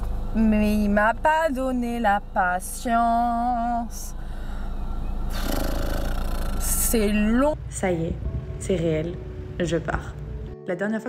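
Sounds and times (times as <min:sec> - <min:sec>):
vehicle engine running: 0:00.0 - 0:10.6.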